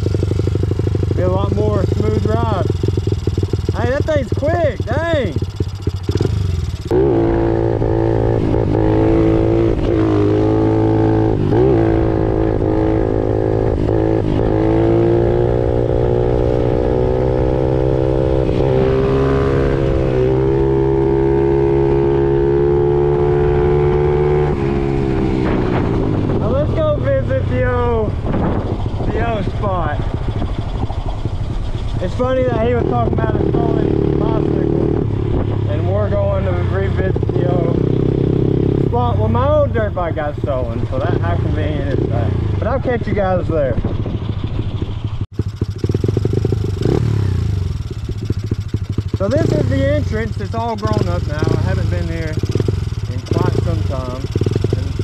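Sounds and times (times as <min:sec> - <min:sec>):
small motorbike engine revving: 0:00.0 - 0:27.4, 0:28.2 - 0:39.8, 0:43.8 - 0:55.0.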